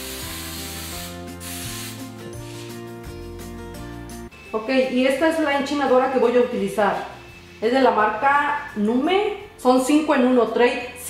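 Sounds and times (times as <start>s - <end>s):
aerosol spray hissing: 0.0s - 2.8s
background music: 0.0s - 11.0s.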